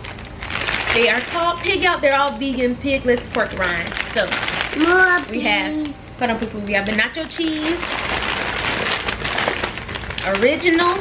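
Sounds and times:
plastic snack bags crinkling: 0.0s - 11.0s.

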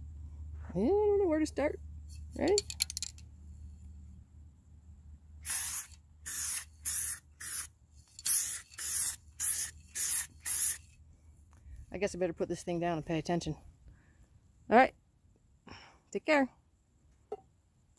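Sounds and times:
spray paint can hissing bursts: 5.4s - 10.9s.

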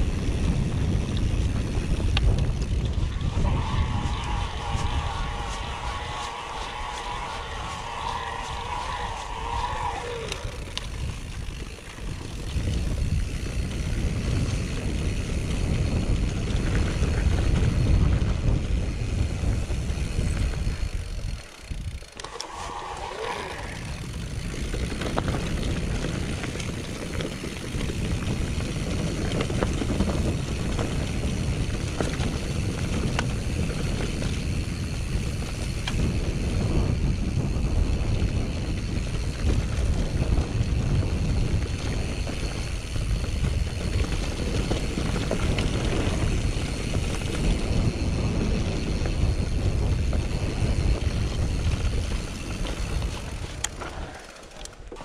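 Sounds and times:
wind on microphone: 0.0s - 54.2s
bike rattling and clicking: 0.0s - 55.0s
bike tyres rumbling: 0.0s - 55.0s
short wavering whirr: 1.3s - 14.6s, 19.0s - 28.8s.

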